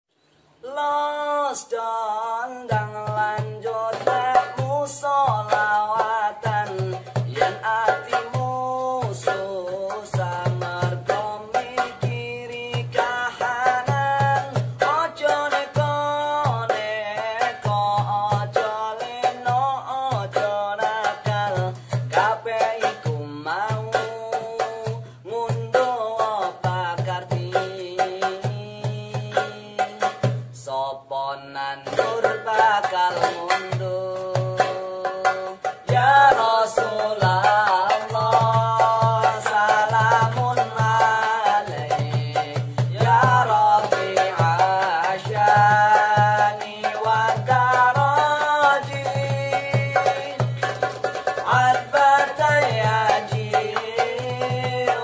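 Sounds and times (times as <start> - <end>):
young men singing in harmony: 0.6 - 55.0
acoustic guitar: 1.8 - 55.0
darbuka drum: 2.6 - 30.7, 31.7 - 55.0
beatbox: 2.7 - 30.7, 31.8 - 55.0.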